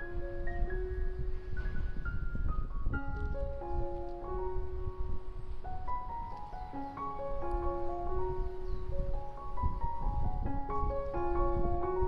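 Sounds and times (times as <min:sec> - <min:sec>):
slow melody of held notes: 0:00.0 - 0:12.0.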